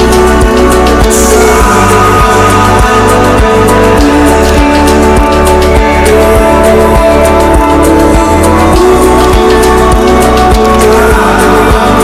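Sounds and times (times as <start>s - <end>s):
song with steady drum beat: 0.0s - 12.0s.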